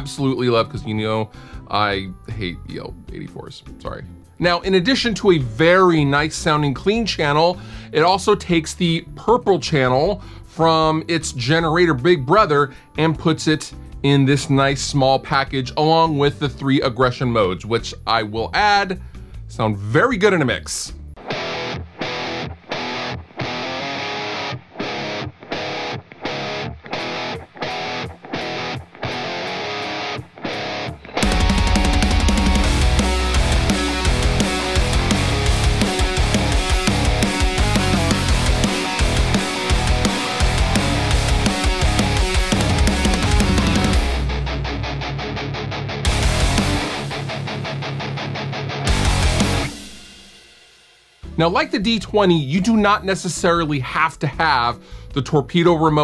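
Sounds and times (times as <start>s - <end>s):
electric guitar heavy riff: 21.2s - 50.5s.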